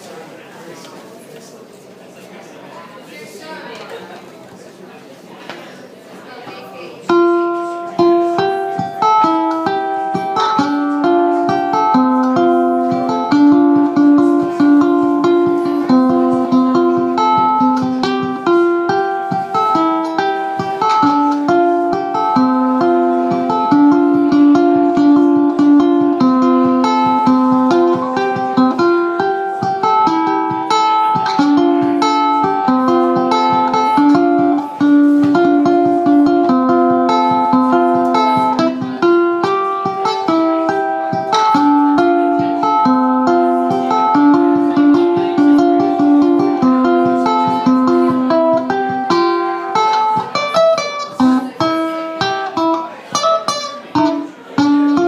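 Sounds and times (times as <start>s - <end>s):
ukulele playing a waltz: 7.0s - 55.0s.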